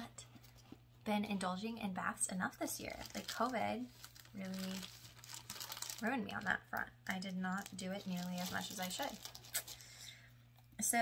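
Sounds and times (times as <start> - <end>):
woman speaking: 1.0 - 4.9, 6.0 - 9.2, 10.8 - 11.0
wrapping crinkling: 2.7 - 10.0.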